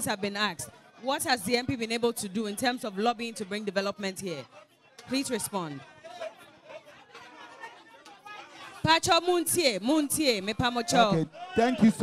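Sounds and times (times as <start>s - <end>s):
audience chatter and murmuring: 0.0s - 9.0s
man speaking into a microphone: 10.8s - 12.0s.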